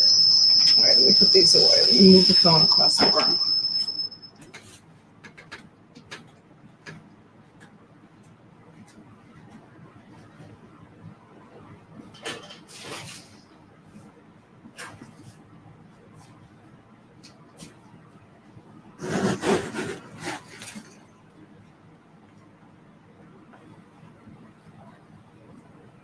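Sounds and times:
microphone feedback whistle: 0.0 - 4.4.

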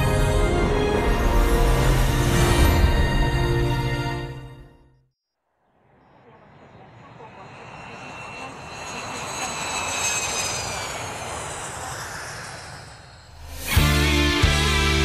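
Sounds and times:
jet airliner taking off: 5.8 - 14.6.

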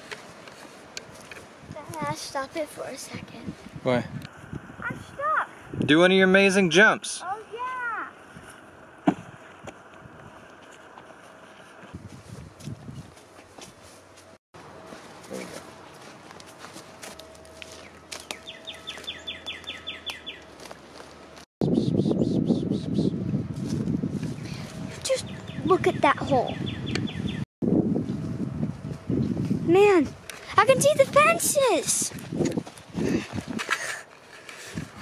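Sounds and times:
footsteps crunching through dry grass: 0.0 - 2.4, 8.1 - 21.5, 23.2 - 25.2, 27.7 - 35.0
quiet outdoor ambience: 0.0 - 21.5
thump of landing on ground: 9.0 - 9.3.

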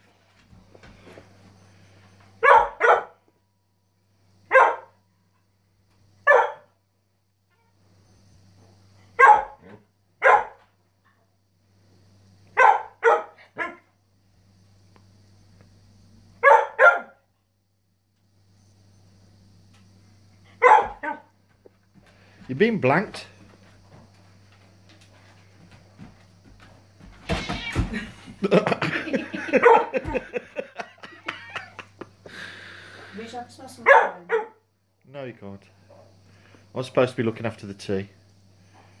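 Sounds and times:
dog barking: 2.4 - 3.2, 4.5 - 5.0, 6.2 - 6.7, 9.2 - 10.6, 12.6 - 13.9, 16.4 - 17.2, 20.6 - 21.3, 29.4 - 30.1, 33.8 - 34.6.

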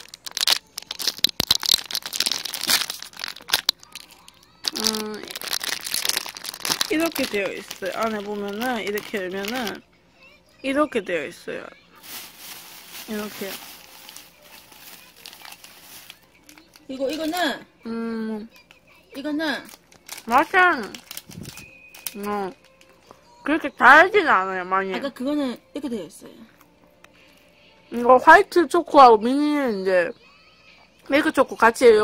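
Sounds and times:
plastic wrapper crinkling: 0.0 - 9.8, 12.0 - 17.6, 19.6 - 23.1.

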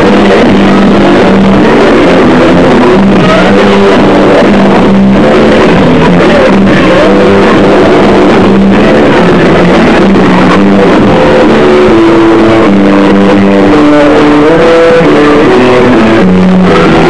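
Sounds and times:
distorted noise-rock band: 0.0 - 17.0
low bass guitar note: 0.0 - 17.0.

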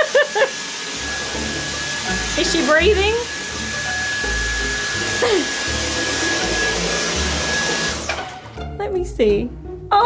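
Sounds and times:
stick vacuum cleaner running: 0.0 - 8.6.

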